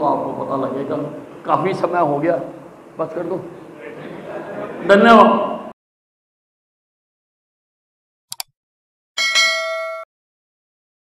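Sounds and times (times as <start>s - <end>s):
notification bell ding: 9.2s - 10.1s.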